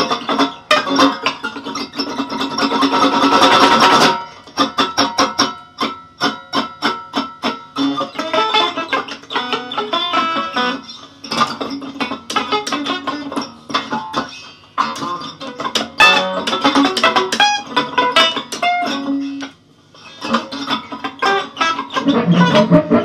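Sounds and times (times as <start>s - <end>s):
electric guitar improvisation: 0.0s - 23.0s.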